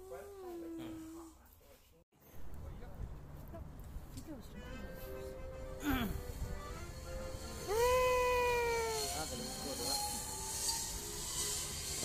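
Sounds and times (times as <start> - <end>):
person's high-pitched cry: 7.7 - 9.1.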